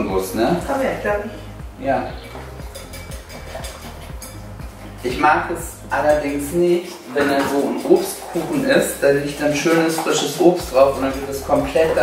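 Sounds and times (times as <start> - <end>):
background music: 0.0 - 12.0
light clinks of stirring: 2.3 - 5.1.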